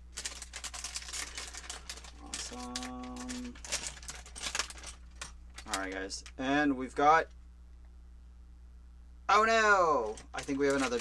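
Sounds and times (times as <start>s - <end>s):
plastic bag crinkling: 0.0s - 6.5s, 10.0s - 11.0s.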